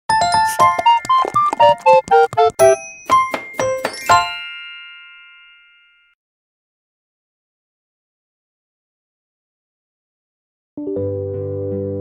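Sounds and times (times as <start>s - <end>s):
bell-like chime: 0.1s - 6.2s.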